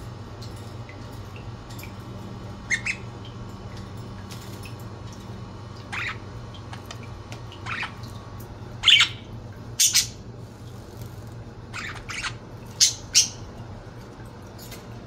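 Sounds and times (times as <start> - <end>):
budgerigars chirping and squawking: 2.7 - 3.1, 5.9 - 6.2, 7.6 - 8.0, 8.8 - 10.2, 11.7 - 13.5.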